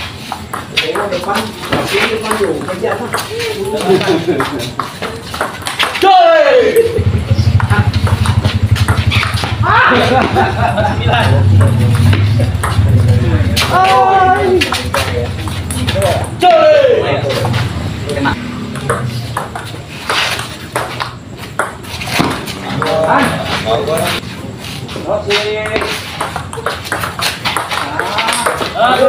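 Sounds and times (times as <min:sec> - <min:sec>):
voices: 0:00.1 - 0:29.0.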